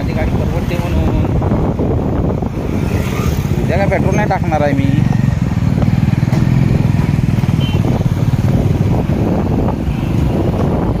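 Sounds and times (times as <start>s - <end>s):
motorcycle engine droning: 1.9s - 11.0s.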